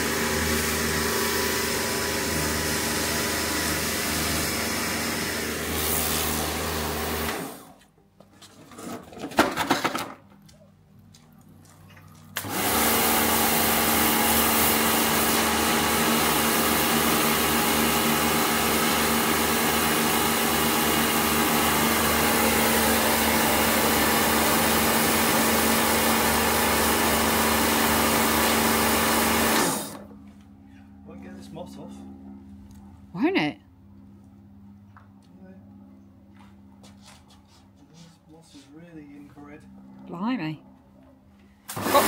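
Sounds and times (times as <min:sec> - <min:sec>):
pressure washer motor humming: 0:00.0 - 0:07.8, 0:12.4 - 0:30.1, 0:41.7 - 0:42.0.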